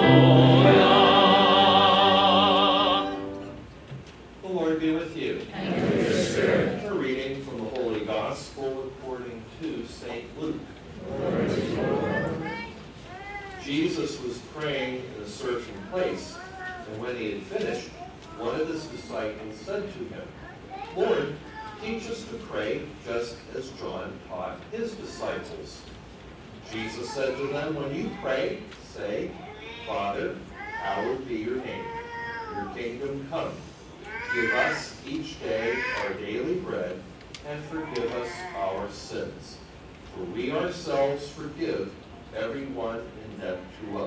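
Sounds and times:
high-pitched voice gliding pitch: 0.0 - 3.6
person speaking: 0.0 - 3.7, 10.4 - 12.9.

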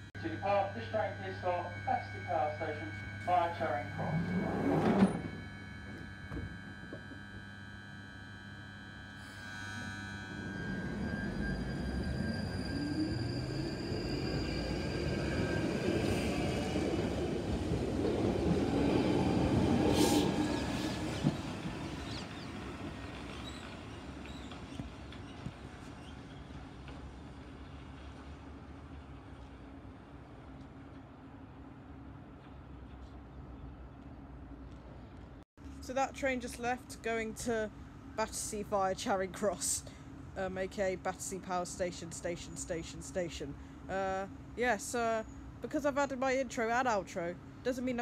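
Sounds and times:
train motors whining: 0.3 - 27.2.

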